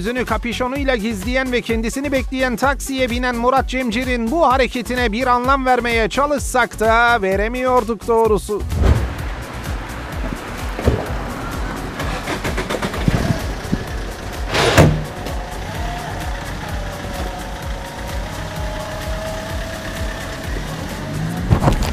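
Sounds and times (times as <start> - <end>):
background music with steady beat: 0.0 - 21.9
car and street noise: 8.5 - 21.9
car door slamming: 8.7 - 9.5, 10.1 - 15.4.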